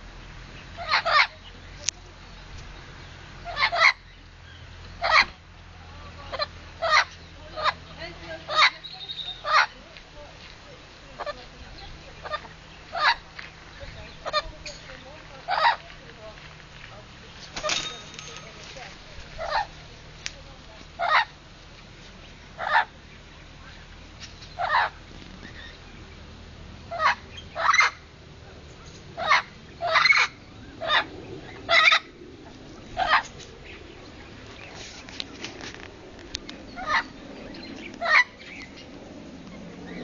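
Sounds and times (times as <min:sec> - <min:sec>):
parrot squawking: 0:00.7 - 0:01.4, 0:03.4 - 0:04.1, 0:19.4 - 0:19.7, 0:21.0 - 0:21.4, 0:22.6 - 0:22.9, 0:24.6 - 0:25.0, 0:26.9 - 0:28.0, 0:29.2 - 0:31.1, 0:36.8 - 0:37.1.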